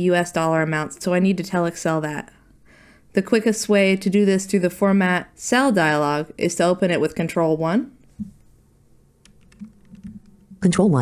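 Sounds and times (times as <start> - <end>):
keyboard key clicks: 9.3 - 10.4.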